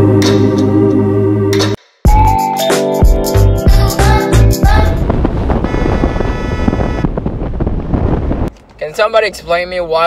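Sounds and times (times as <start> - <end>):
high whine: 3.7 - 8.4
wind buffeting microphone: 4.4 - 8.6
vehicle road noise: 4.8 - 10.0.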